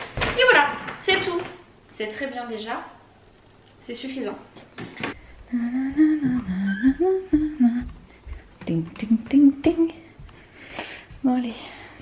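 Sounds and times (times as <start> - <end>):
woman humming: 5.4 - 10.0.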